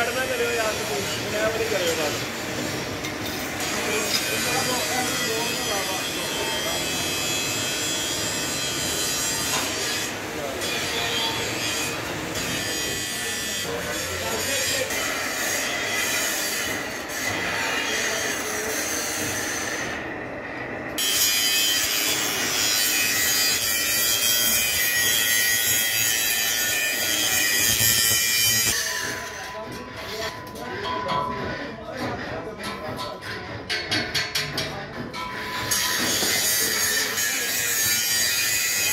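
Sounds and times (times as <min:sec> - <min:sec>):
steel plate grinding on rollers: 0:21.0 - 0:38.9.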